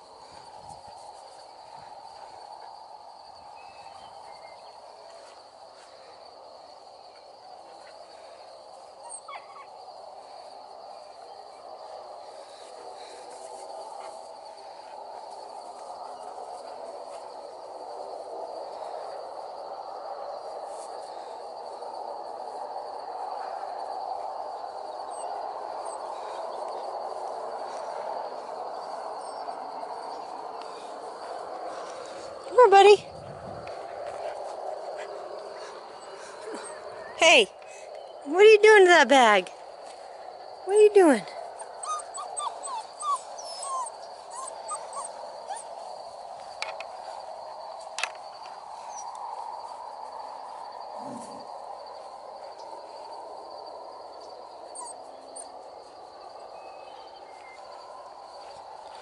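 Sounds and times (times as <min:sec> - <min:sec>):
high insect trill: 0:00.0 - 0:59.0.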